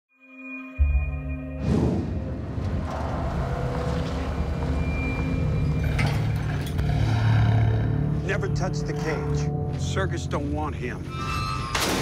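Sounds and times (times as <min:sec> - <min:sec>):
trailer rattle: 0:01.6 - 0:09.2
truck engine and tyres rumbling: 0:02.0 - 0:09.2.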